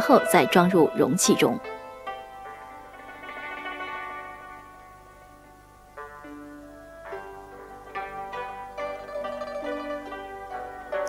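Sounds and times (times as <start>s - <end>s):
plucked strings music: 0.0s - 11.0s.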